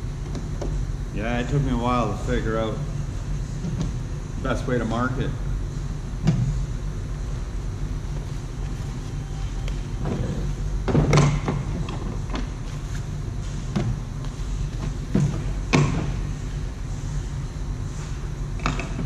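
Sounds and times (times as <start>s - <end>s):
ventilation hum: 0.0s - 19.0s.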